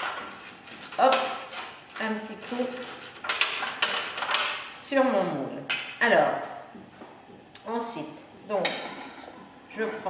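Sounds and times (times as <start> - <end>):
fingers rustling on paper mould: 0.0 - 4.6.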